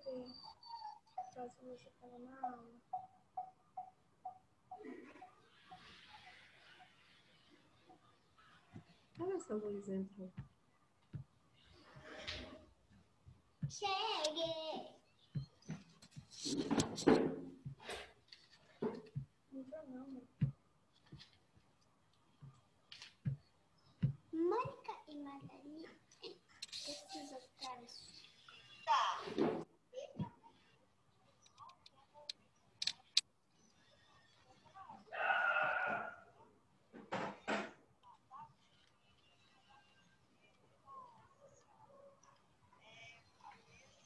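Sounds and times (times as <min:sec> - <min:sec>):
wordless child's voice: 0:00.0 - 0:03.0, 0:13.6 - 0:15.1, 0:19.5 - 0:20.5, 0:24.3 - 0:32.4
sharp clicks: 0:31.4 - 0:33.3.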